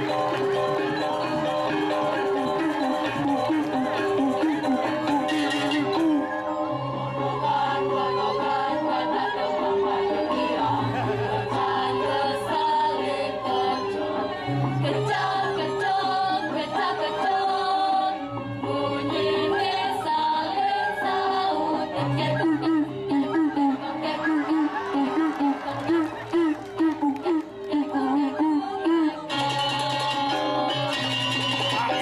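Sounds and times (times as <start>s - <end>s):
gamelan ensemble playing: 0.0s - 6.6s, 29.2s - 32.0s
voices singing held notes: 0.0s - 32.0s
person singing stylized vocal: 1.6s - 6.3s, 21.0s - 30.7s.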